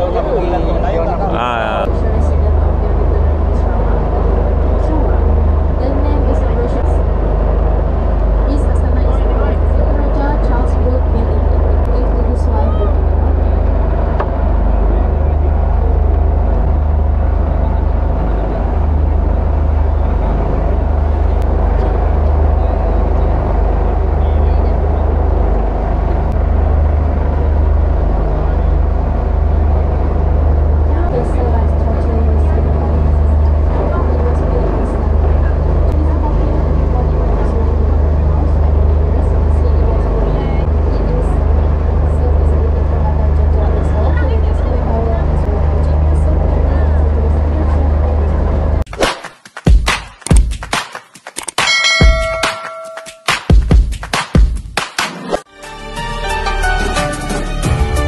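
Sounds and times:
boat engine drone: 0.0 - 48.9
passengers chattering: 0.0 - 48.9.

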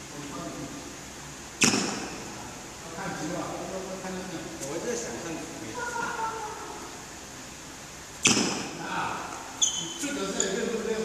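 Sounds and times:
racket striking shuttlecock: 1.6 - 2.3, 8.2 - 8.8.

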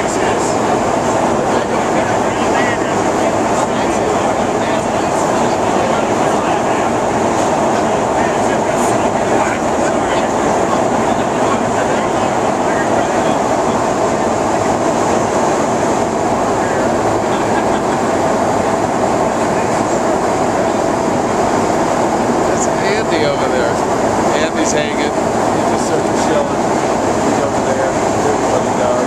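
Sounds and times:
aircraft cabin engine drone: 0.0 - 29.0
faint voices: 0.0 - 29.0.

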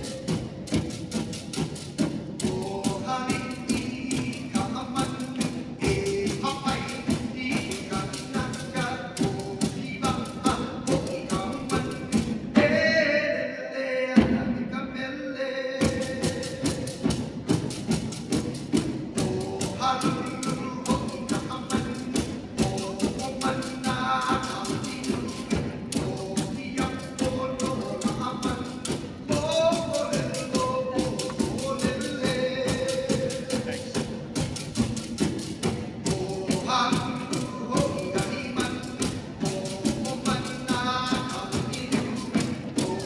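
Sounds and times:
bamboo rattles clacking: 0.0 - 12.4, 16.0 - 43.0
person chanting: 2.4 - 17.0, 19.2 - 34.2, 36.0 - 43.0.

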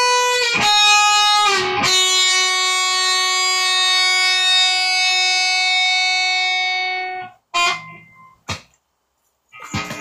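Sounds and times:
guitar note ringing: 0.0 - 8.6.

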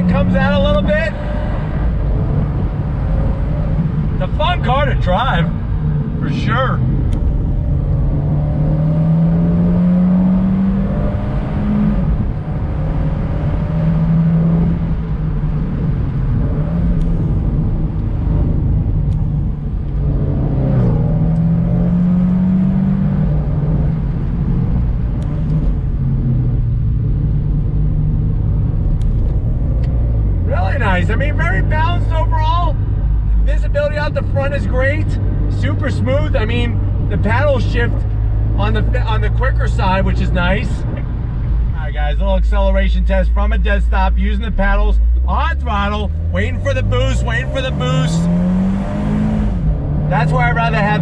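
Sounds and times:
car engine accelerating: 0.0 - 51.0
road and wind noise: 0.0 - 51.0.

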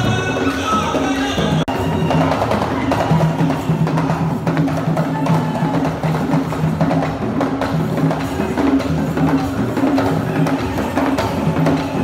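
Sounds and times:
hand drums playing fast rhythm: 0.0 - 12.0.

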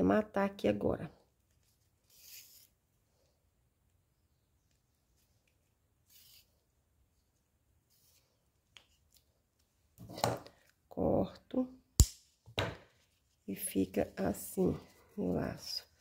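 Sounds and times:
ribbon and thread rustling: 1.3 - 3.3, 12.9 - 16.0.

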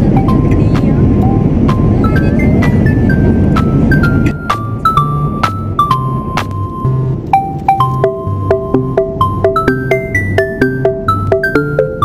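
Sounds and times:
airliner cabin noise: 0.0 - 12.0
mallet-like background music: 0.1 - 12.0.

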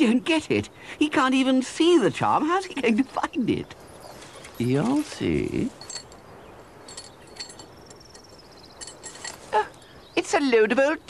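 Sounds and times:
scrap metal clinking: 4.1 - 9.8.

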